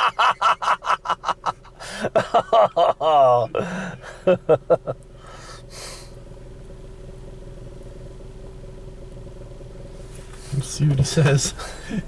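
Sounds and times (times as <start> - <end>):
man laughing: 0.0 - 5.0, 11.3 - 12.0
car engine humming: 0.0 - 12.0
rustle: 4.8 - 11.8.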